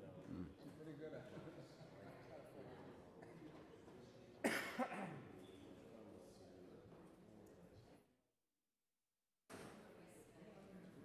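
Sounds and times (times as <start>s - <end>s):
faint room murmur: 0.0s - 8.2s
person coughing: 4.5s - 5.2s.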